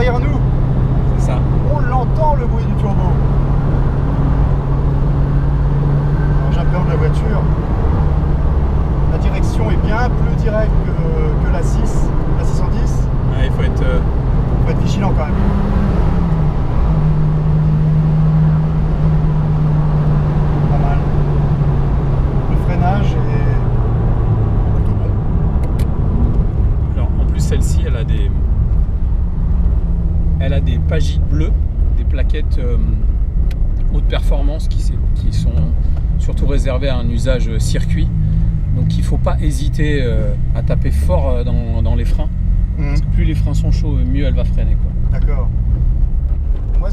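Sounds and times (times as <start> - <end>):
car engine drone from cabin: 0.0 - 46.9.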